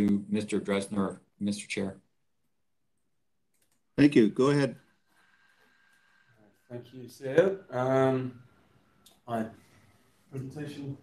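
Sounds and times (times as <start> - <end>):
faint clicks: 3.5 - 3.9.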